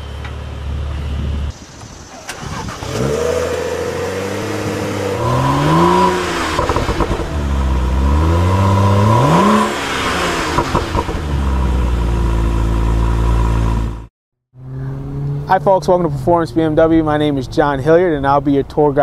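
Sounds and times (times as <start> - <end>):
car engine revving: 2.2 - 17.2.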